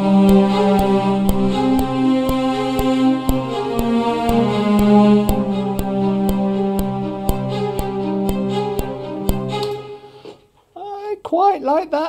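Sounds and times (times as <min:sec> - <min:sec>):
sustained legato cello: 0:00.0 - 0:10.2
sharp short ticks: 0:00.3 - 0:09.8.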